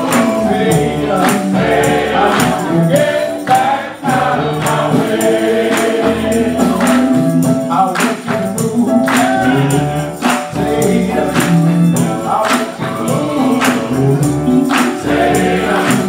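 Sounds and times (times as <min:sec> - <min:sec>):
bass guitar and percussion: 0:00.0 - 0:16.0
men's choir singing: 0:00.0 - 0:16.0.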